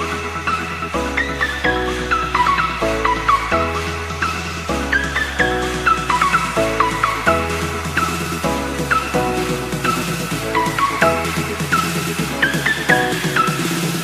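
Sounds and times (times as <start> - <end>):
background music chords and bass: 0.0 - 14.0.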